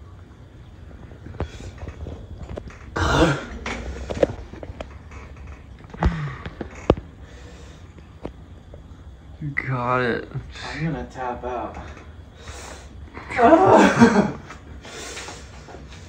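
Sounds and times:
man coughing: 3.0s - 3.6s, 13.2s - 14.4s
man breathing hard: 5.9s - 8.1s, 12.2s - 13.1s, 14.7s - 16.0s.

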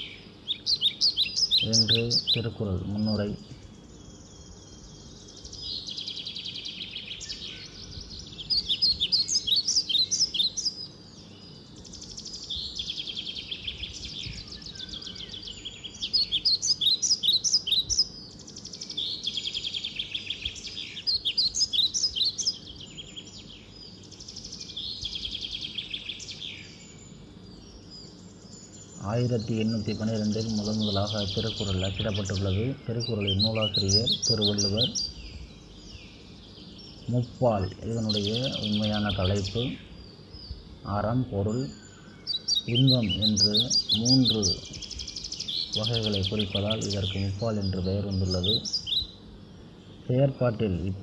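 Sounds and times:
songbird singing: 0.0s - 51.0s.

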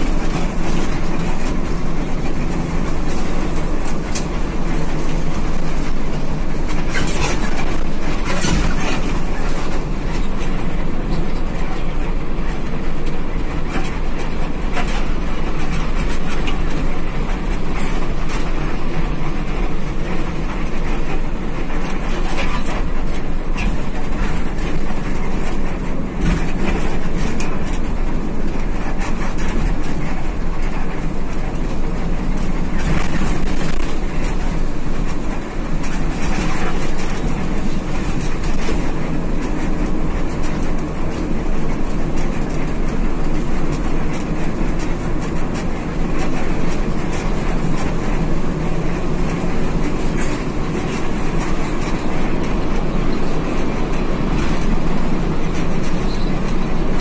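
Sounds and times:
coach engine and road noise: 0.0s - 57.0s
light rattles and clicks: 0.0s - 57.0s.

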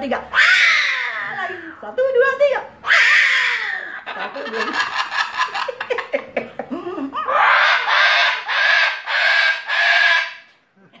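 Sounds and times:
cockatoo screeching: 0.3s - 1.8s, 2.8s - 4.1s, 7.2s - 10.5s.

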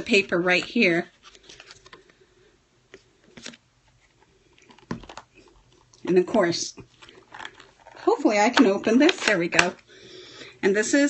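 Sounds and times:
paper and plastic rustling: 0.1s - 2.2s, 3.2s - 8.2s.

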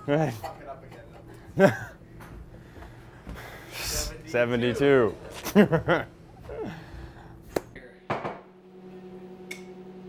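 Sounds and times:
electrical hum: 0.0s - 10.0s.

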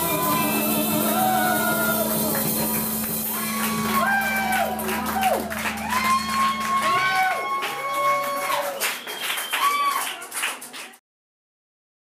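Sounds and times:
drum hits: 0.0s - 7.2s
steady low note: 0.0s - 8.0s
gliding melody notes: 0.0s - 8.2s.

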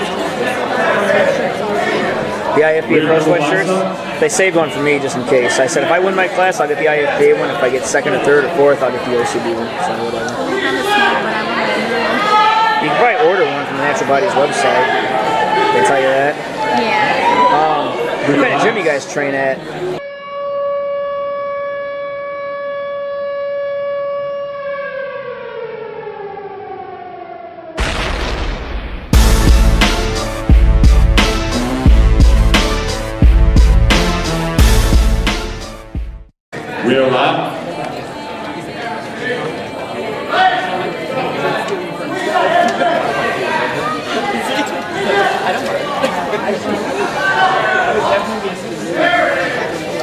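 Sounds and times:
chatter of many voices: 0.0s - 20.1s, 36.5s - 50.0s
siren-like tone sliding down: 20.9s - 28.0s
loud hit: 27.8s - 35.4s.

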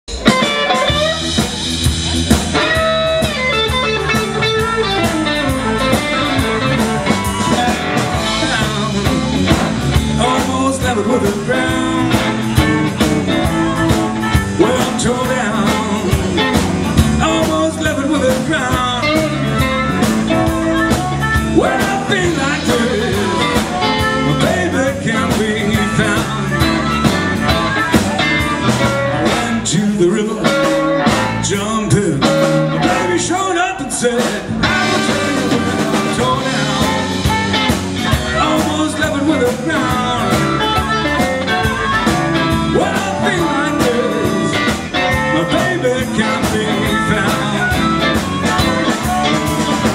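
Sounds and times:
blues band playing shuffle: 0.0s - 49.9s
wailing blues harmonica: 0.1s - 33.7s, 34.5s - 49.9s.

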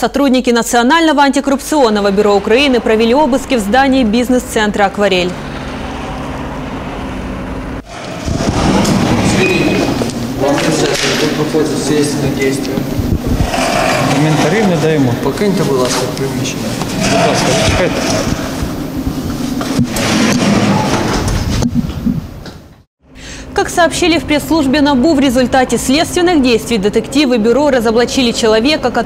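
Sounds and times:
rough indoor location noise: 0.0s - 29.0s
distant traffic hum: 0.8s - 22.6s
steady rushing noise: 1.7s - 22.4s.

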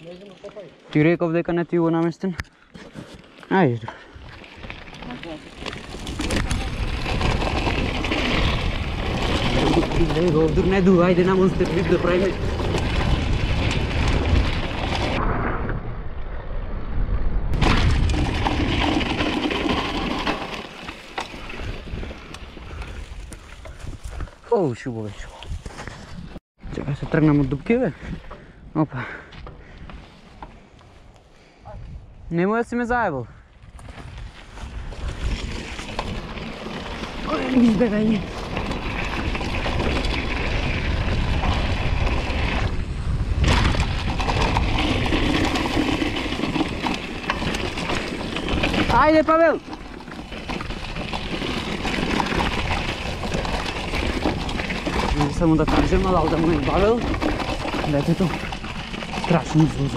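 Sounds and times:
bike clicking and rattling: 0.0s - 15.2s, 17.6s - 24.4s, 33.6s - 59.9s
bike tyres rolling on dirt: 0.0s - 16.5s, 17.5s - 59.9s
wind rushing over microphone: 5.8s - 19.8s, 31.6s - 32.4s, 38.0s - 49.6s
wind buffeting microphone: 21.4s - 24.5s, 31.6s - 32.3s, 33.2s - 49.2s.

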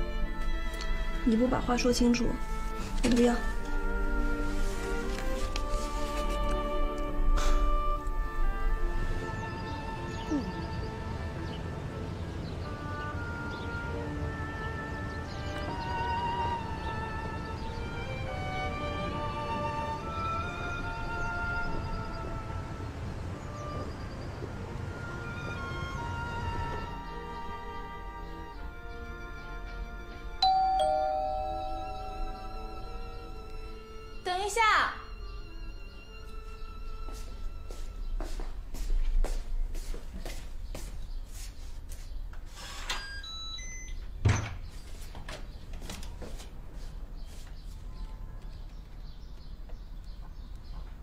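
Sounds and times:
held string notes: 24.8s - 37.6s
electronic lock beeps: 42.8s - 44.5s.

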